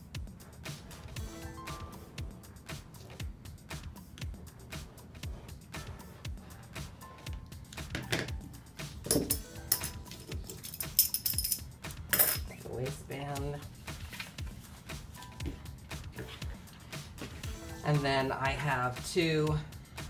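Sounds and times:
metal washers clinking: 9.0s - 12.5s
paper rustling: 13.8s - 14.9s.

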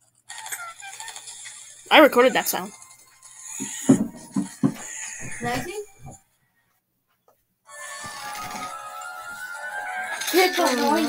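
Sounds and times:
crackly slurping through straw: 0.3s - 2.0s
voice: 1.9s - 2.7s, 5.3s - 5.9s, 10.3s - 11.0s.

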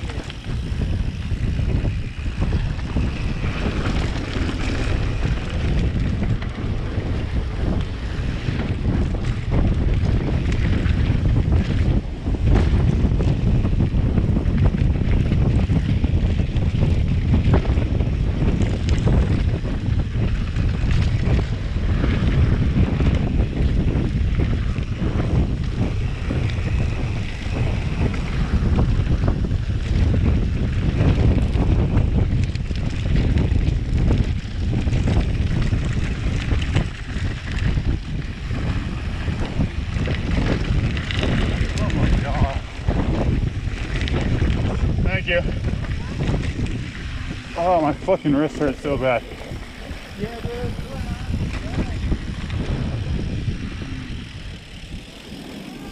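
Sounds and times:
bike clicks and rattles: 0.0s - 55.9s
tyres rumbling on dirt: 0.0s - 55.9s
wind buffeting microphone: 0.0s - 55.9s.

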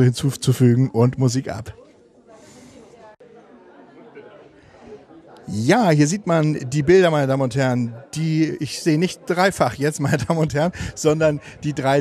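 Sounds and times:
murmur of background voices: 0.0s - 12.0s.

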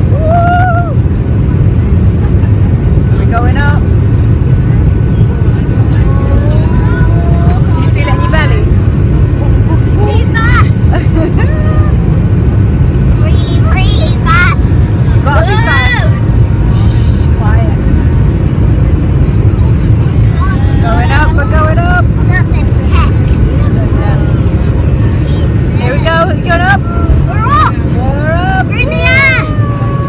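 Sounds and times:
jet engines rumbling in cabin: 0.0s - 30.0s
children's excited voices: 27.1s - 27.9s, 28.7s - 30.0s.

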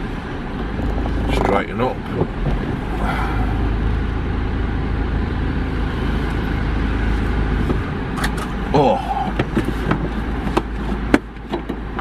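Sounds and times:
van engine idling: 0.0s - 12.0s.

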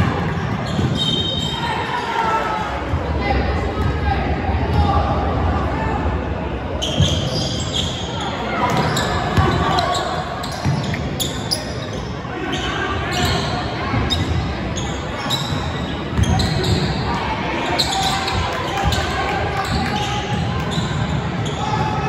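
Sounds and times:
voices echoing in gym: 0.0s - 22.0s.

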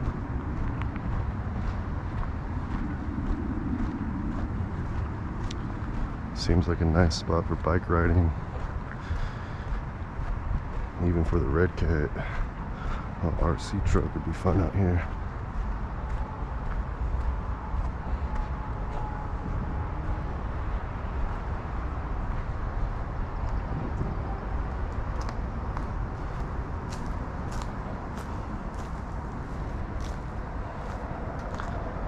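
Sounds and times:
footsteps on dirt trail: 0.0s - 32.0s
low rumble on microphone: 0.0s - 32.0s.

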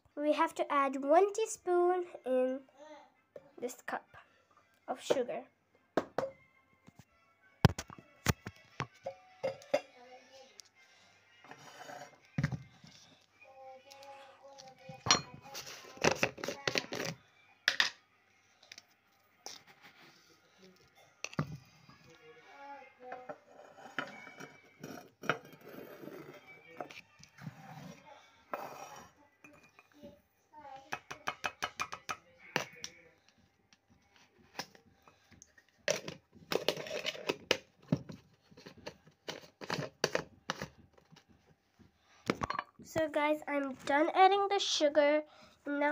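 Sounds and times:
teaspoon clinking against glass: 9.4s - 9.9s.

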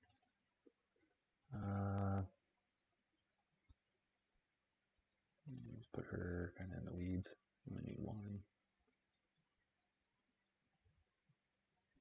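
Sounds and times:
mouse clicks: 0.0s - 0.4s
man talking: 1.5s - 2.3s, 5.5s - 8.4s.

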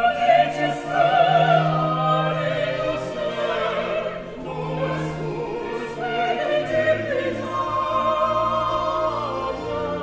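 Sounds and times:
mixed chorus singing: 0.0s - 10.0s
orchestra playing: 0.0s - 10.0s.

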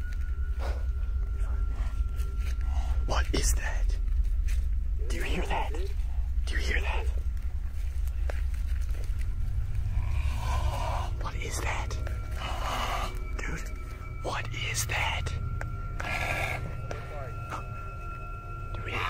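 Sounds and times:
steady low drone: 0.0s - 19.0s
hushed whispering voices: 0.6s - 4.1s, 5.0s - 7.3s, 9.9s - 17.7s, 18.7s - 19.0s.

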